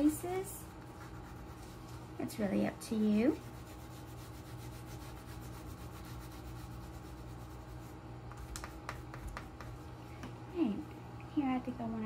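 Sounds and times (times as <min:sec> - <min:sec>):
wax crayon rubbing on paper: 0:00.9 - 0:02.0, 0:03.0 - 0:09.8.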